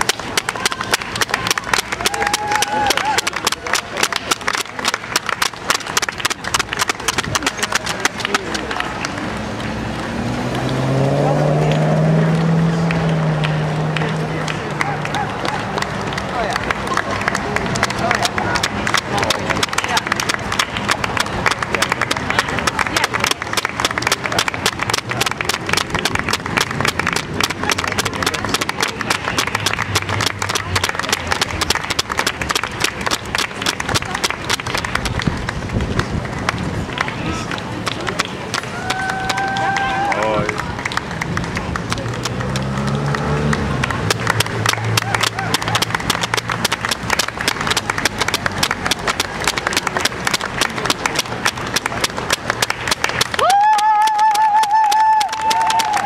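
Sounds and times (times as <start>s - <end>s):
runners' shoes pattering on road: 0.0s - 11.0s, 13.4s - 56.0s
crowd voices: 0.0s - 56.0s.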